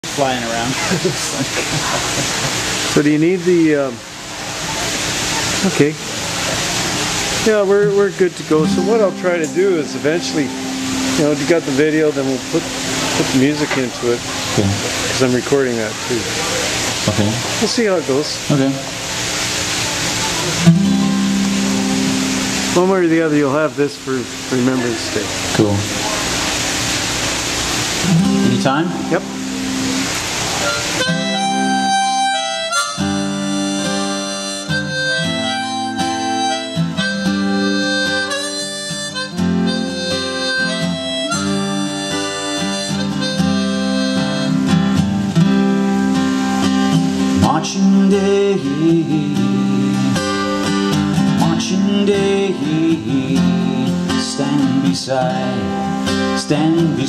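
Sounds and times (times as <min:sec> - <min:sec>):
acoustic guitar chord ringing: 0:00.0 - 0:57.0
harmonica melody: 0:00.3 - 0:04.0, 0:06.6 - 0:57.0.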